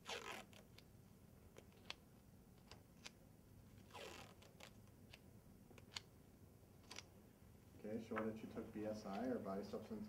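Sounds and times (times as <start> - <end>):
adhesive tape ripping: 0.0 - 0.8, 3.8 - 5.2.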